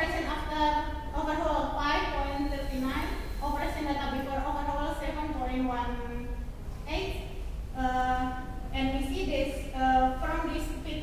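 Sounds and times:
low steady hum: 0.0s - 11.0s
woman speaking into microphone: 0.0s - 11.0s.

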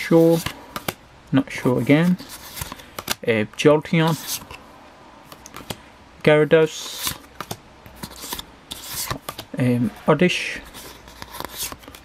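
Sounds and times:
cards rubbing swishes: 1.7s - 3.2s, 4.0s - 4.6s, 6.7s - 10.0s, 10.6s - 12.0s.

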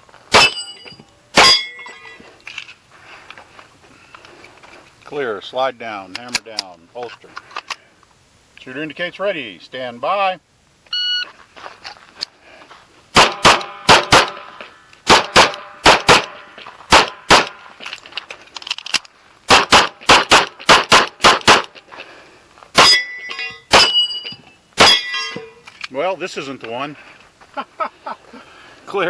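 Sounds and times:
shot timer beep: 10.9s - 11.3s
pistol firing rapid shots: 13.2s - 14.4s, 15.1s - 17.6s, 19.5s - 21.7s.

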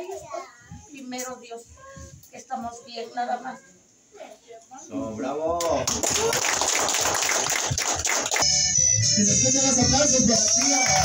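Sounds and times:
guests applauding: 5.6s - 8.6s, 10.3s - 11.0s.

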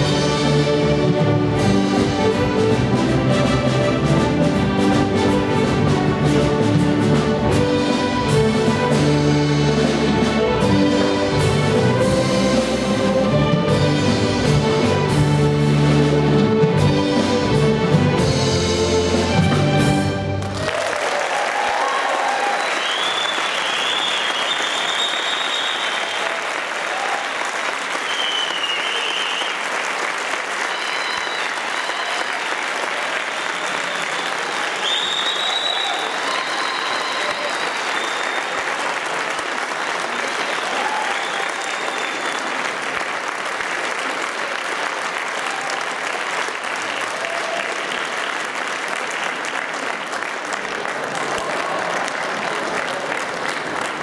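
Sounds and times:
audience applauding: 20.3s - 54.0s
shrill cheers: 20.5s - 29.6s, 30.5s - 32.6s, 33.4s - 38.7s, 40.4s - 42.7s, 47.0s - 48.0s.

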